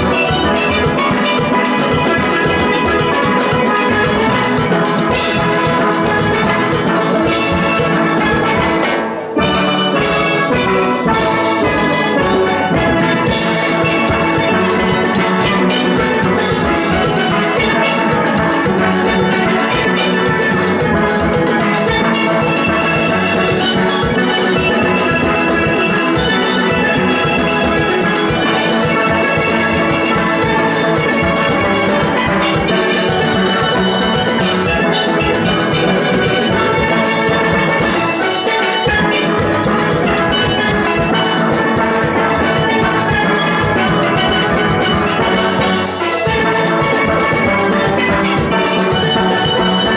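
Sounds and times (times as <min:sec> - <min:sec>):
drums keeping the beat: 0:00.0 - 0:49.9
steel pans playing calypso: 0:00.0 - 0:49.9.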